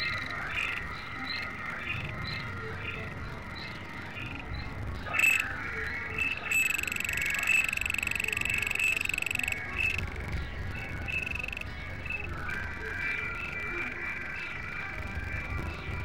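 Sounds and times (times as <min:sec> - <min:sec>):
high-pitched fluttering tone: 0:05.1 - 0:15.2
experimental electronic music: 0:06.1 - 0:12.7.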